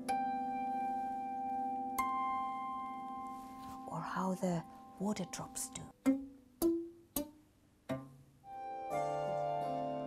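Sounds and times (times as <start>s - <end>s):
plucked kantele notes: 0.0s - 10.0s.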